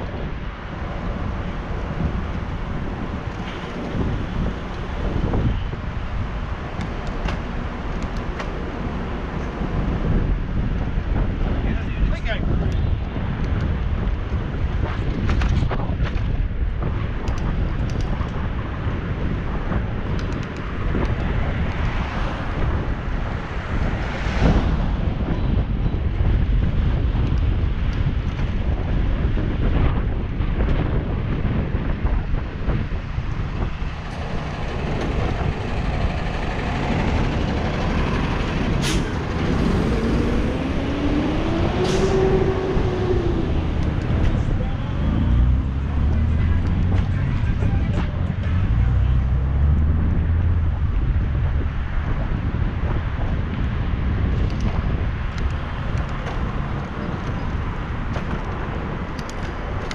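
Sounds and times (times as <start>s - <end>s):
road traffic: 0.0s - 59.9s
wind rumble on microphone: 0.0s - 59.9s
vehicle engine accelerating: 32.8s - 53.1s.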